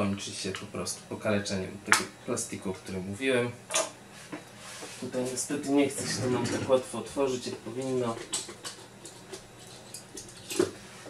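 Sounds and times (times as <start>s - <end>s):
small tools clicking and tapping: 8.2s - 10.7s.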